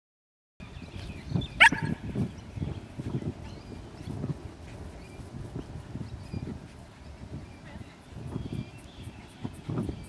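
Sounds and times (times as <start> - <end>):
dog barking: 1.6 - 2.0.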